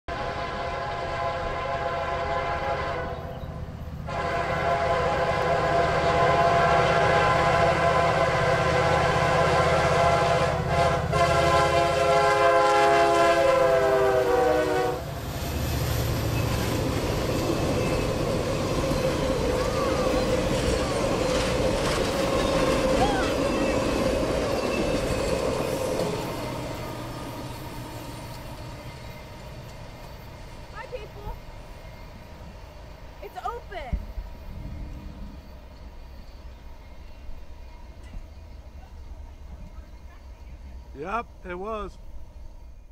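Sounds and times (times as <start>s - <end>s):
locomotive air horn: 0.1s - 3.3s, 4.0s - 15.2s
train wheels on rails: 0.6s - 42.9s.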